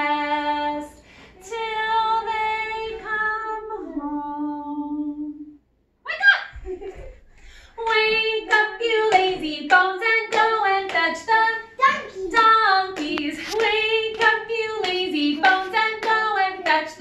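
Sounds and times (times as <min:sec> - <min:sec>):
woman and children singing: 0:00.0 - 0:05.6, 0:07.8 - 0:17.0.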